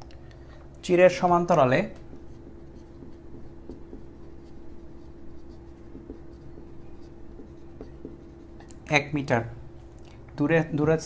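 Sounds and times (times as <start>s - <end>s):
steady low hum: 0.0s - 11.0s
marker scratching on whiteboard: 1.8s - 9.0s.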